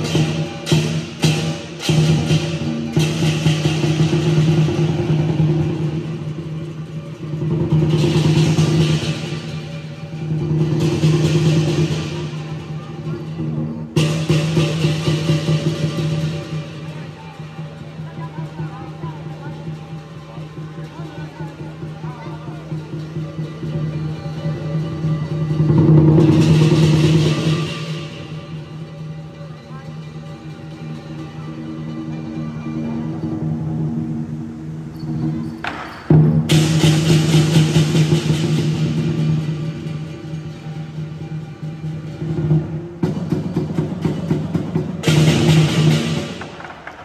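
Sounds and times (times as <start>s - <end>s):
gong: 0.0s - 46.4s
big drum: 0.0s - 47.0s
cymbals clashing: 0.0s - 47.0s.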